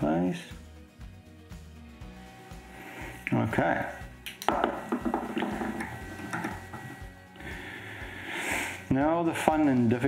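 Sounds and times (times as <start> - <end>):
tools clicking and tapping: 4.2 - 6.9.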